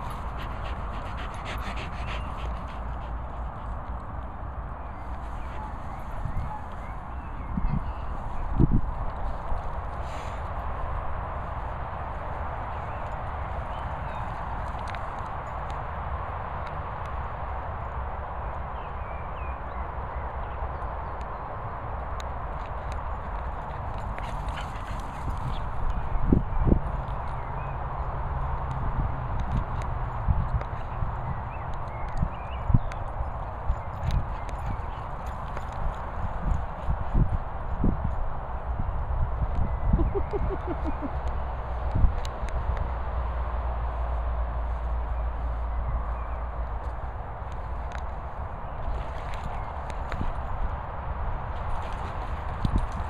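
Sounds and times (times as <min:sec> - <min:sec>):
outdoor noise haze: 0:00.0 - 0:53.0
wind buffeting microphone: 0:00.0 - 0:53.0.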